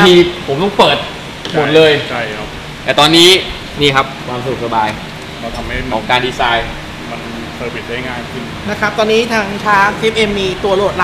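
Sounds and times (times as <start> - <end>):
men talking: 0.0 - 8.6
room noise hum: 0.0 - 11.0.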